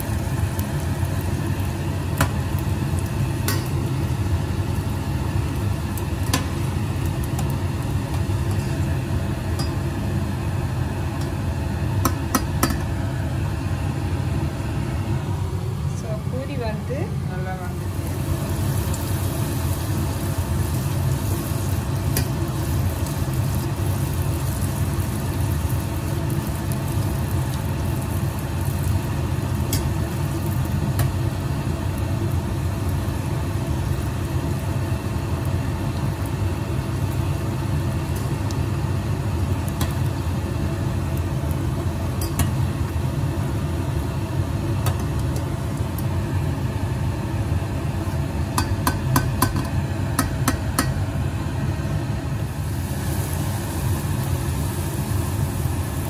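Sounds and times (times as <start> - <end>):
constant low hum: 0.0 - 56.0
food sizzling and bubbling in oil: 0.0 - 56.0.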